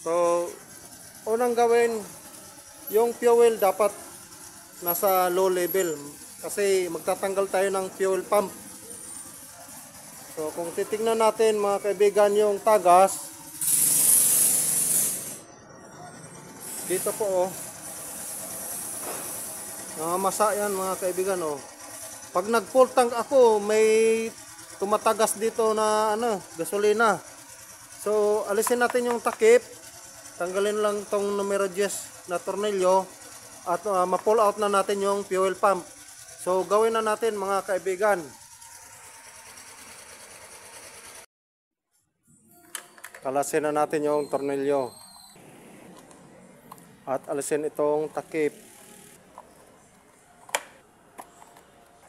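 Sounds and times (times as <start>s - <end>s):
machine running with hiss: 0.0s - 15.4s, 16.1s - 41.3s, 45.4s - 49.6s.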